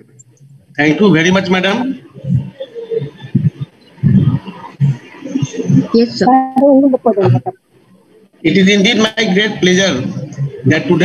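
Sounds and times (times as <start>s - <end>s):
man's low rough vocal noises: 2.2s - 5.0s.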